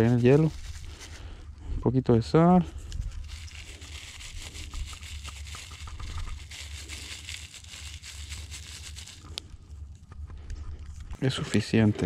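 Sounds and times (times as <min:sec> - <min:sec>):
salt sprinkling patter: 0:00.0 - 0:01.4, 0:02.9 - 0:09.5
low steady rumble: 0:00.0 - 0:12.0.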